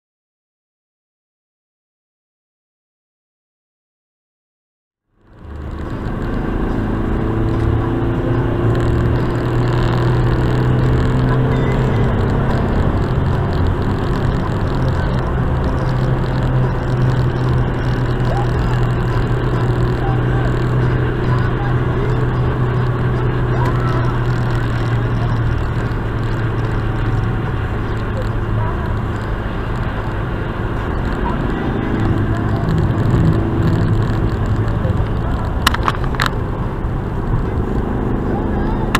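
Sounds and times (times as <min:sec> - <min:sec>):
low engine drone: 0:05.1 - 0:38.9
tyre and road rumble: 0:05.1 - 0:38.9
sharp clicks: 0:32.0 - 0:36.4.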